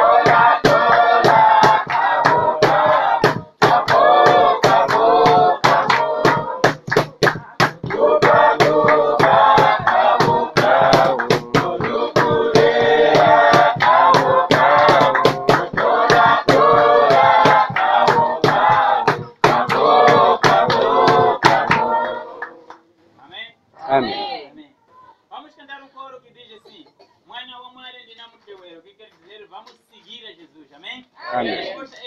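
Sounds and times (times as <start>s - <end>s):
sharp rhythmic beats: 0.0s - 22.7s
group singing in harmony: 0.0s - 22.8s, 31.2s - 31.9s.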